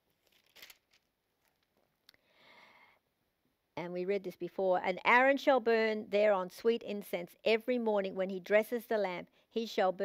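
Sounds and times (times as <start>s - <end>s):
thin pages rustling: 0.1s - 1.8s.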